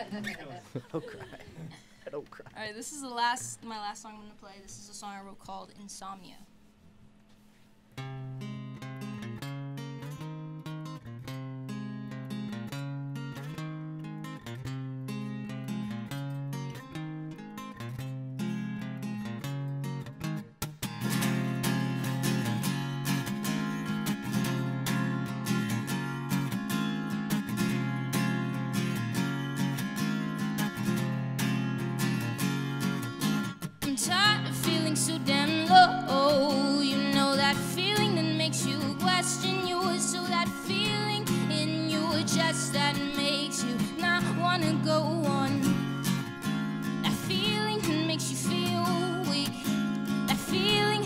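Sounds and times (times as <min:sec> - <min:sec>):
acoustic guitar playing: 0:00.0 - 0:02.0, 0:07.4 - 0:51.0.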